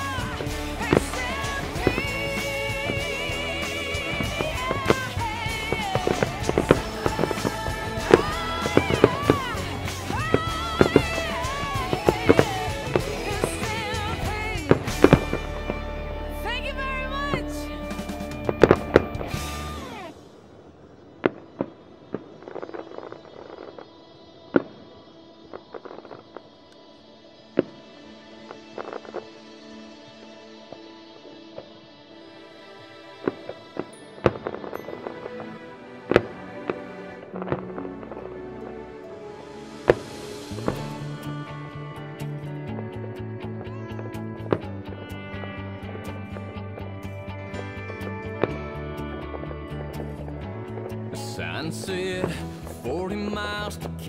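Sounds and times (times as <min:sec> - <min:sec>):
music with singing voice: 0:00.0 - 0:20.4, 0:21.2 - 0:54.0.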